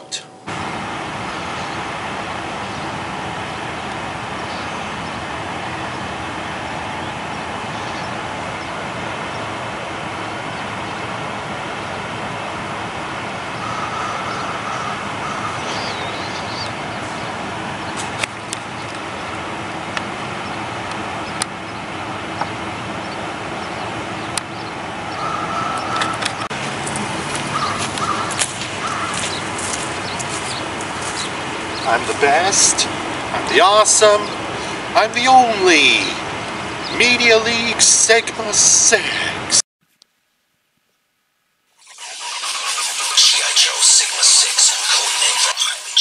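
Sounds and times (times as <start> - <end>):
distant road traffic: 0.0 - 39.6, 41.8 - 46.0.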